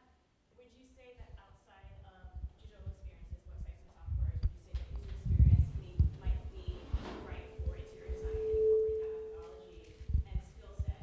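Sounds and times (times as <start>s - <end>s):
microphone feedback ringing: 5.6s - 11.0s.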